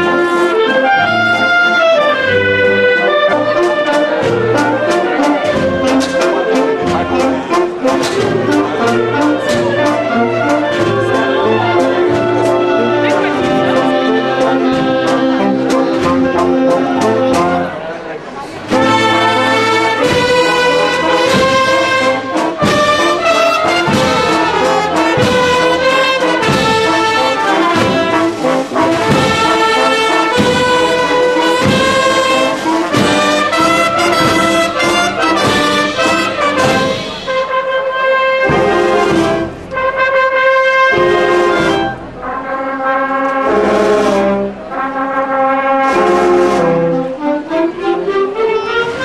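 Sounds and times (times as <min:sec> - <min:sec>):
brass band playing a march: 0:00.0 - 0:49.0
drum beat: 0:18.7 - 0:37.5.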